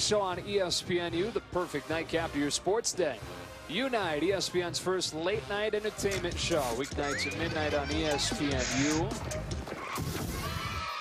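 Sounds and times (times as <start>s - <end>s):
wavering animal cry: 6.9s - 9.2s.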